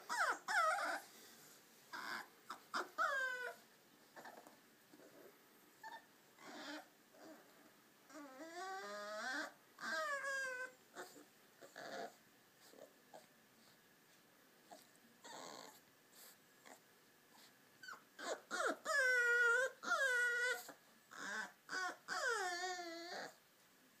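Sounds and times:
puppy whining and whimpering: 0.0s - 1.2s, 1.9s - 13.3s, 14.7s - 23.4s.

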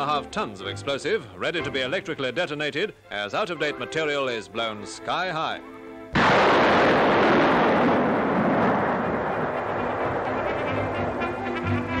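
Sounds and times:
explosion blast rumbling: 6.2s - 11.2s
faint brass music: 9.1s - 12.0s.

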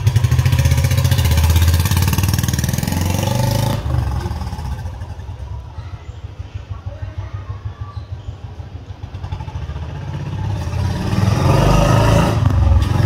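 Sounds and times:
motorcycle engine pulling away: 0.0s - 6.2s, 7.7s - 13.0s.

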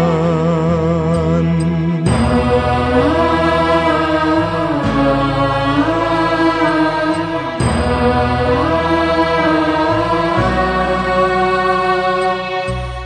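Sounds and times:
low steady accompaniment: 0.0s - 13.0s
person chanting a hymn: 0.0s - 13.0s.

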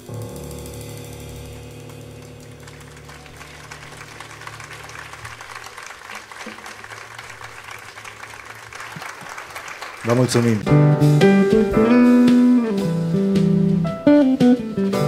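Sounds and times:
jazz trio low notes: 0.0s - 5.6s, 10.6s - 15.0s
audience applause: 1.9s - 10.7s.

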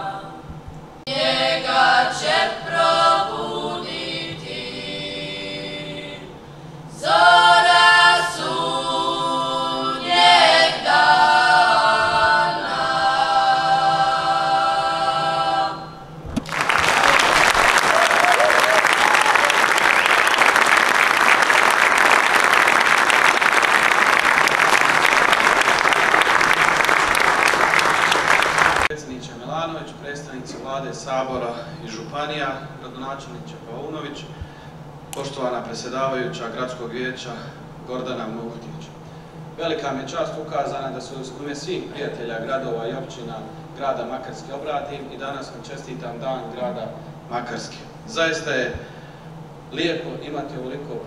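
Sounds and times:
children's choir singing a cappella: 0.0s - 16.2s
audience applauding: 16.4s - 28.9s.

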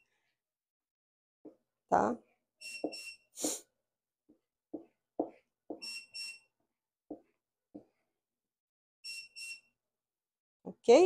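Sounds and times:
high electronic oven beeps: 2.6s - 3.3s, 5.8s - 6.5s, 9.0s - 9.8s.

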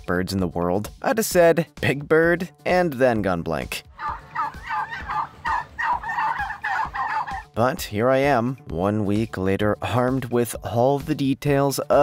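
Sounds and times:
turkeys gobbling: 3.9s - 7.5s.

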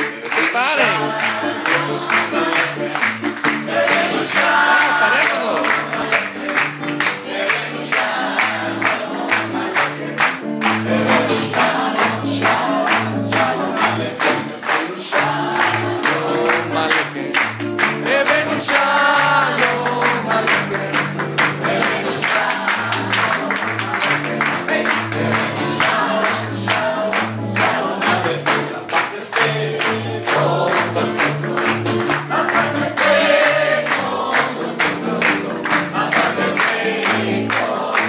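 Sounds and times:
audience clapping along: 0.0s - 38.0s
several voices singing: 0.0s - 38.0s.

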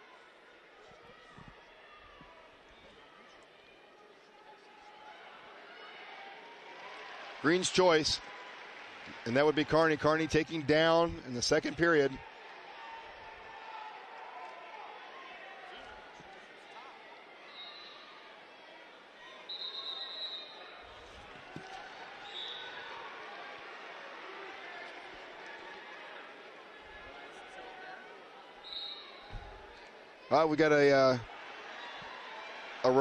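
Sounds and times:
arena crowd murmur: 0.0s - 33.0s
referee's whistle blasts: 19.5s - 20.7s, 22.2s - 22.8s, 28.6s - 29.4s.

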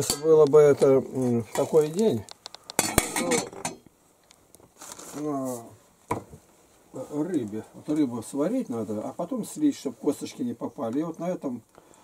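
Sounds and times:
lid clinking on enamel pot: 2.8s - 3.8s.

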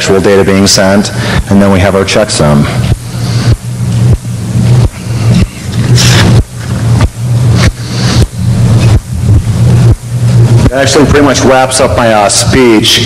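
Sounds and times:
low hum with hiss: 0.0s - 13.0s.

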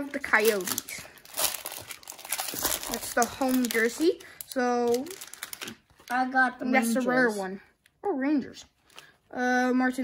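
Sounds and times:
plastic wrapper crinkling: 0.0s - 6.4s.

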